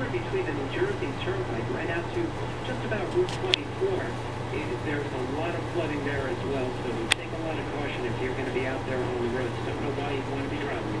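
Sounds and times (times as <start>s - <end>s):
low hum: 0.0s - 11.0s
man talking: 0.0s - 11.0s.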